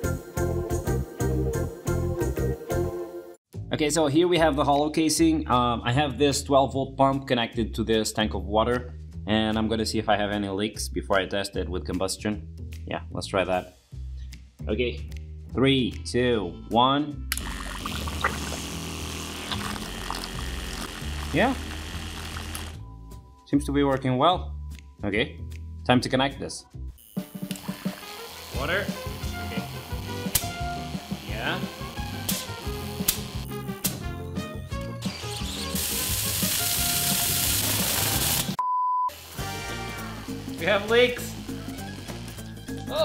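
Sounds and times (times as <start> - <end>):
background music: 0.0 - 43.0
water pump humming: 17.4 - 22.8
one-tone bleep: 38.6 - 39.1.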